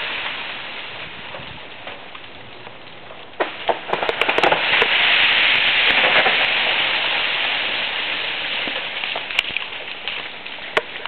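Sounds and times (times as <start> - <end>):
ice-coated branches cracking: 0.0 - 11.0.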